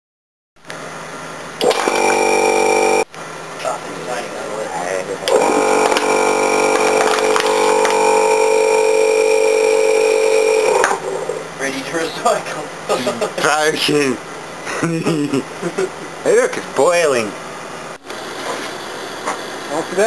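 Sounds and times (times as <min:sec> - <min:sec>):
vacuum pump droning whine: 0:00.6 - 0:12.8.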